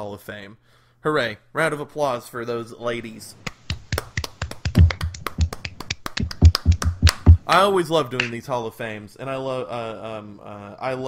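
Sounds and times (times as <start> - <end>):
people clapping: 3.5 - 7.4.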